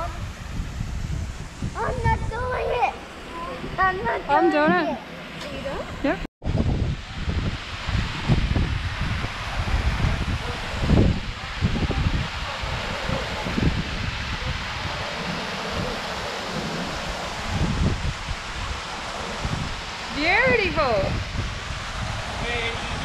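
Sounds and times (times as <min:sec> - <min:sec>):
wind buffeting microphone: 0:00.0 - 0:23.0
waterfall splashing into pool: 0:06.5 - 0:23.0.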